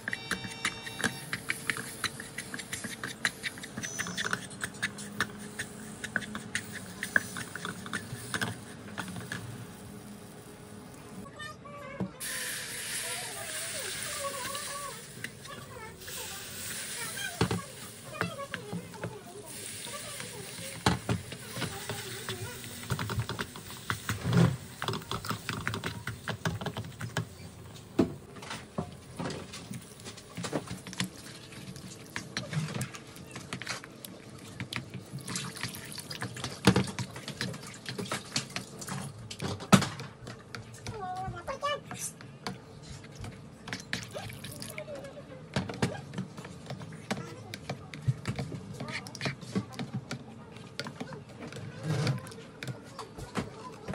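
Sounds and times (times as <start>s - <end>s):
whisk stirring thick gravy: 1.3s - 9.8s, 13.3s - 27.5s.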